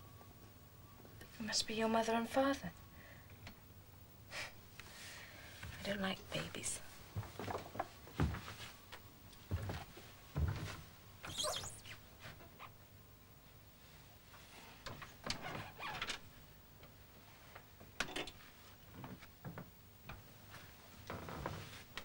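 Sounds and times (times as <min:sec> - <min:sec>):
knocks and handling noises: 0:07.1 - 0:10.9
wardrobe door creaking: 0:10.4 - 0:12.0.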